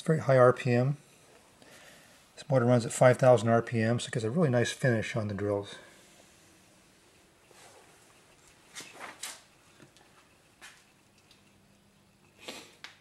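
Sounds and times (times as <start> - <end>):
faint steady hum: 0.0 - 13.0
soft handling rustles and knocks: 7.4 - 11.6.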